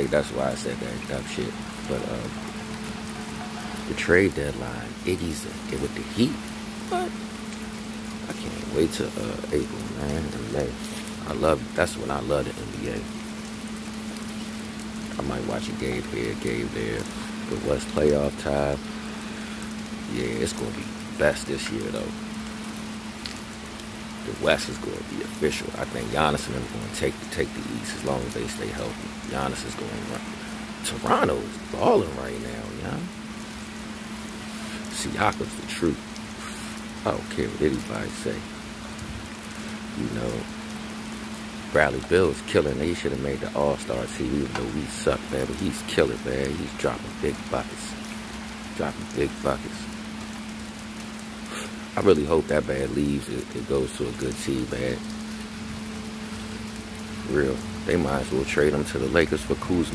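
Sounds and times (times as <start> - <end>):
low hum: 0.0 - 59.9
steady background hiss: 0.0 - 59.9.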